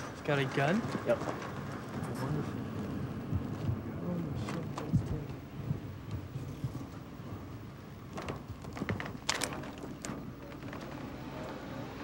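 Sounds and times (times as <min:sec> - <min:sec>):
steady low rumble: 0:01.6 - 0:08.1.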